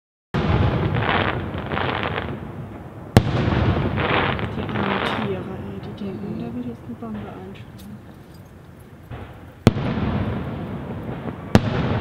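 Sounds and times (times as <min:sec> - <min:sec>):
sharp firework bang: 0:00.4 - 0:02.5, 0:03.1 - 0:05.4, 0:09.1 - 0:12.0
fireworks bursting: 0:00.4 - 0:12.0
fireworks crackling: 0:00.4 - 0:12.0.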